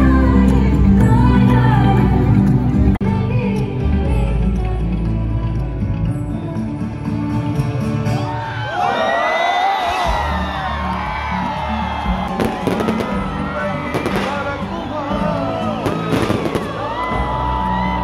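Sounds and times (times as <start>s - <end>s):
crowd noise: 0.0s - 18.0s
loud live concert music: 0.0s - 18.0s.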